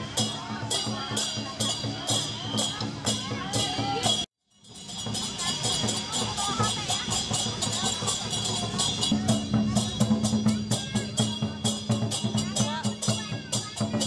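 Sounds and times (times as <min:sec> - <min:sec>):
crowd chatter: 0:00.0 - 0:14.0
cymbals clashing: 0:00.0 - 0:14.0
drum beating: 0:00.0 - 0:14.0.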